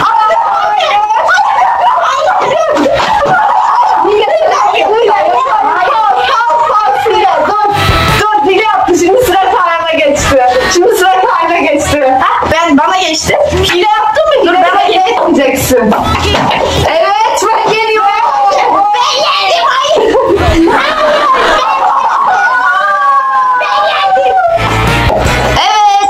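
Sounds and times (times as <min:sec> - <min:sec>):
high-pitched voices squealing: 0:00.0 - 0:08.8, 0:15.9 - 0:24.9.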